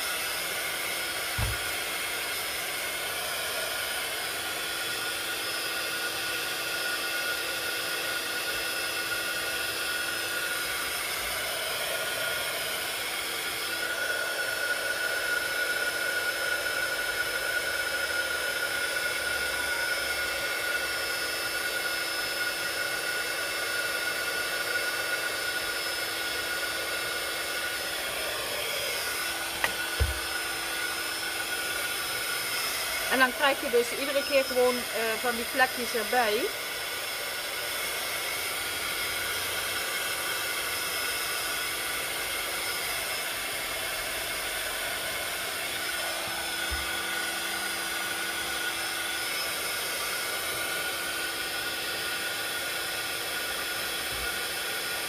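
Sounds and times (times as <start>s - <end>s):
heat gun fan hissing and humming: 0.0s - 55.0s
brief knock: 1.4s - 1.6s.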